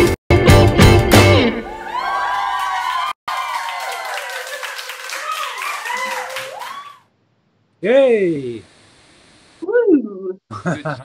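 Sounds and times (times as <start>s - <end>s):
crowd whooping and cheering: 1.5s - 7.1s
crowd clapping: 1.9s - 7.0s.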